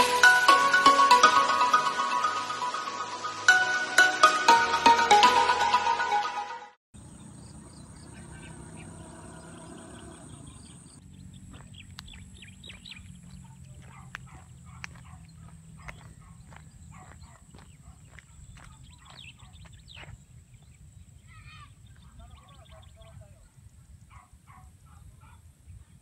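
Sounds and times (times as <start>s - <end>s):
birds chirping: 7.0s - 24.6s.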